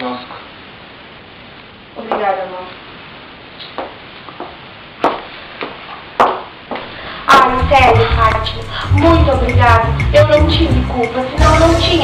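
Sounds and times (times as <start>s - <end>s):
footsteps on tiled floor: 3.6s - 6.9s.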